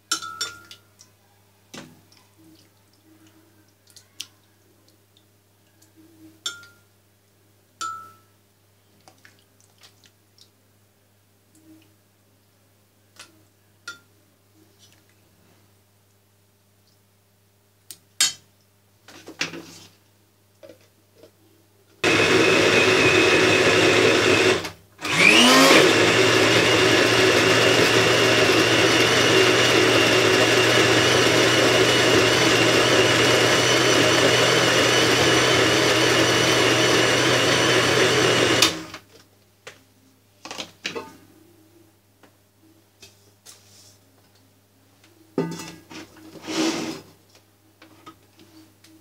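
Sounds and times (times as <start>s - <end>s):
electric blender grinding: 22.0s - 39.0s.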